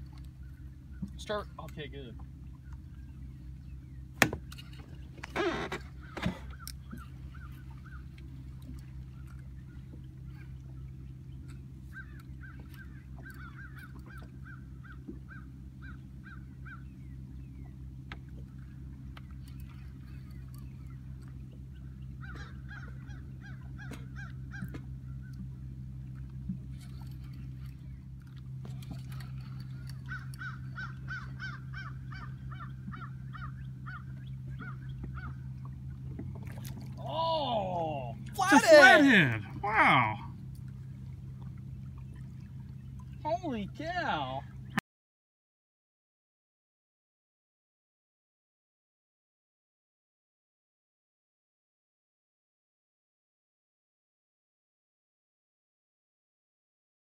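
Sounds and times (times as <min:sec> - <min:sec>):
boat engine hum: 0:00.0 - 0:44.8.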